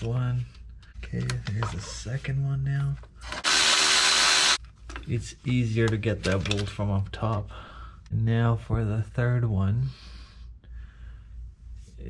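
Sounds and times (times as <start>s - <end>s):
cordless ratchet motor whine: 3.3s - 4.6s.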